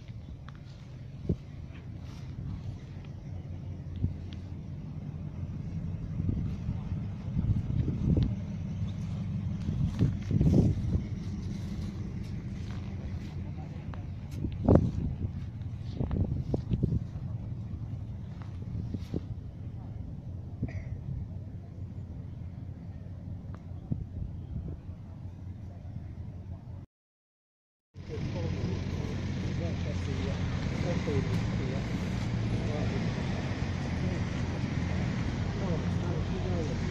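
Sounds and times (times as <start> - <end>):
car engine idling: 0.0 - 26.8, 28.0 - 36.9
low outdoor rumble: 0.0 - 26.9, 28.0 - 36.9
people talking: 6.3 - 8.4, 10.4 - 15.5, 28.0 - 36.9.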